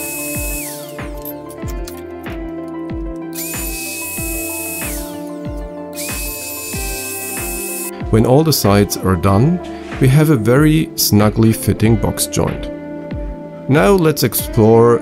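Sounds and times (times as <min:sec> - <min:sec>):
router whining: 0:00.0 - 0:01.2, 0:03.3 - 0:07.9
background music with steady beat: 0:00.0 - 0:15.0.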